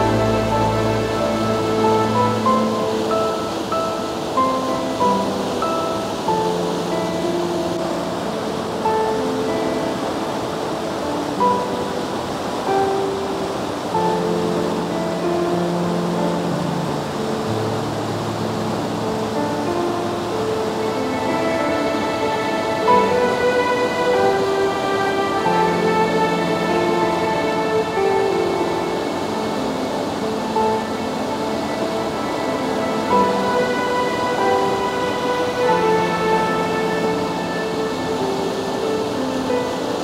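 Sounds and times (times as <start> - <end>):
river water rushing: 0.0 - 40.0
slow music of held notes: 0.0 - 40.0.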